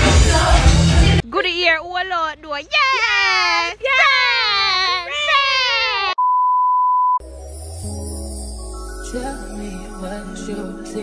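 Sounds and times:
woman yelling excitedly: 1.3 - 6.2
bleep tone: 6.2 - 7.2
soft music with low bass: 7.2 - 11.0.

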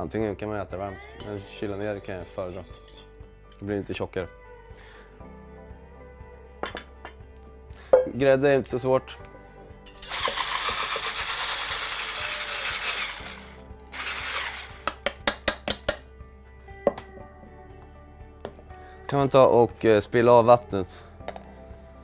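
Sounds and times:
electric blender whipping cream: 10.1 - 14.9.

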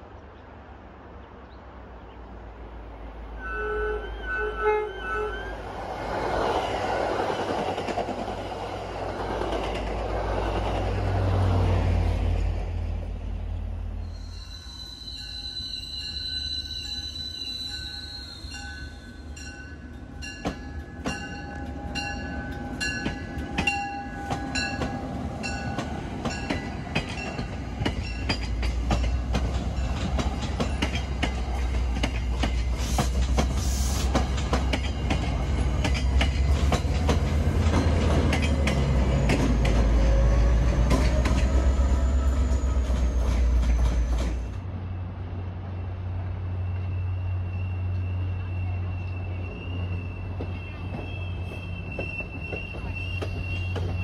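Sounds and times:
train rumble: 1.8 - 54.0
train horn chord: 3.4 - 5.5
wheel squeal: 14.0 - 19.3, 46.7 - 54.0
train wheels clicking: 19.3 - 44.6, 49.0 - 54.0.

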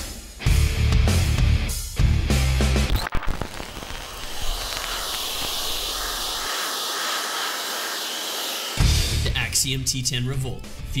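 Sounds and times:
hair dryer blowing: 3.2 - 9.7.

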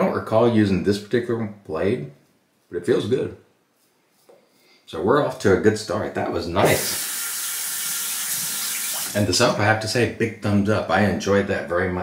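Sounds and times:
tap water running into sink: 6.7 - 9.2.

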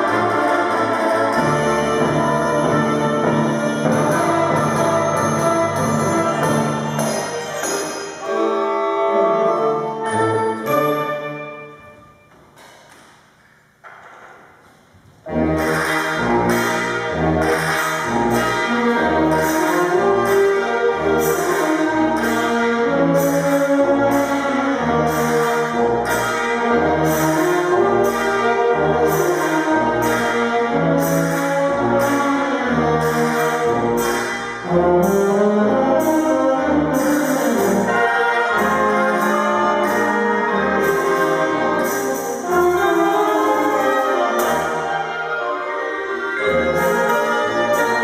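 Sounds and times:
school band playing: 0.0 - 12.8, 15.2 - 48.0.

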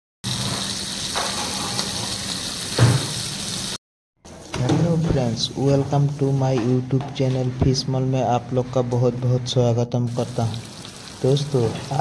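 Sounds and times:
fish sizzling in hot oil: 0.2 - 3.8, 10.1 - 12.0.

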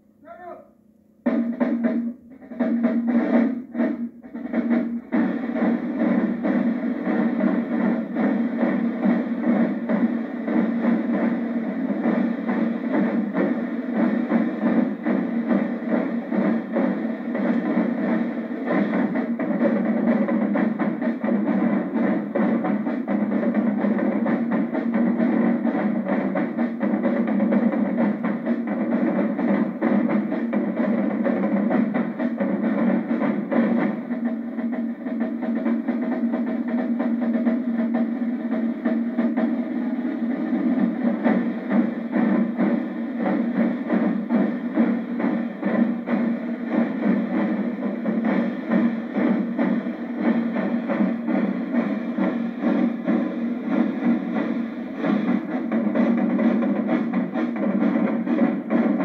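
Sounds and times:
marching drumline: 0.0 - 59.0.

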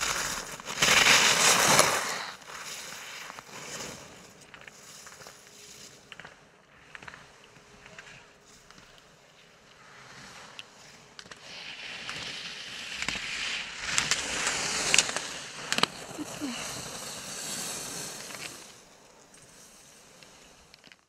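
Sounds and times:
skis hissing on snow: 0.0 - 6.1, 9.8 - 20.8.

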